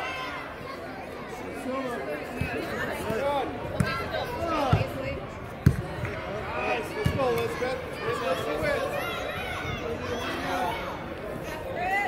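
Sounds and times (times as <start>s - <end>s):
voices calling and talking: 0.0s - 12.0s.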